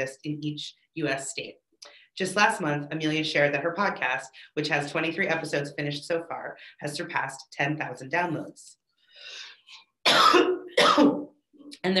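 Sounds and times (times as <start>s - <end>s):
woman coughing: 10.0s - 11.4s.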